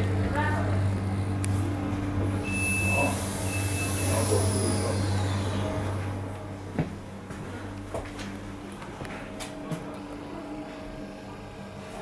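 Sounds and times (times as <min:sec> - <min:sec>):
low electrical hum: 0:00.0 - 0:12.0
short high beeps: 0:02.4 - 0:04.2.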